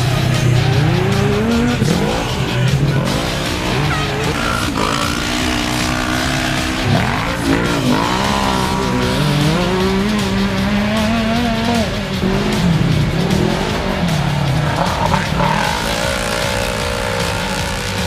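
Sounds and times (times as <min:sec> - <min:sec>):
race engines revving hard: 0:00.0 - 0:18.0.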